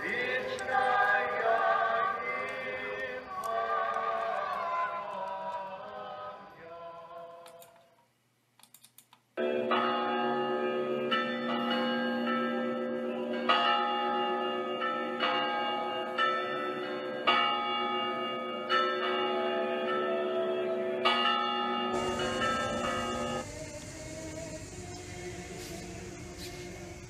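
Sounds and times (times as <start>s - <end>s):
church bells ringing: 9.4s - 27.0s.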